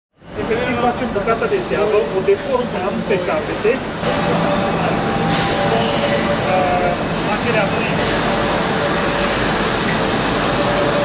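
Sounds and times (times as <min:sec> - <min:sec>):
machinery rumble and hiss: 0:00.2 - 0:11.0
steady machine hums: 0:00.2 - 0:11.0.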